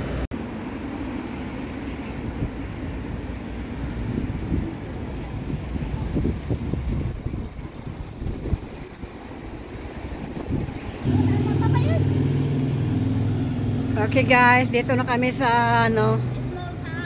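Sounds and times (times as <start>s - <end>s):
vehicle engine humming: 0.0s - 17.0s
wind rumbling on microphone: 2.1s - 14.1s.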